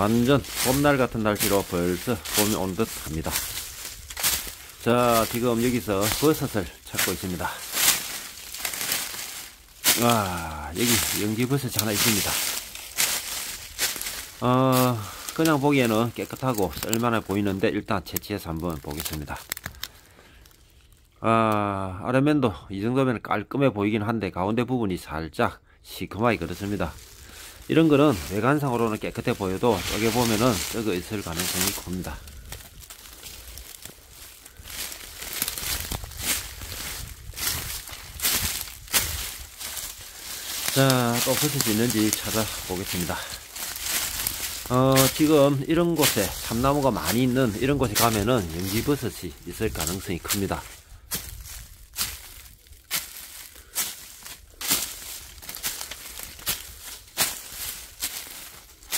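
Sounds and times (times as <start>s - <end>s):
footsteps crunching dry leaves: 0.0s - 20.7s, 26.2s - 58.9s.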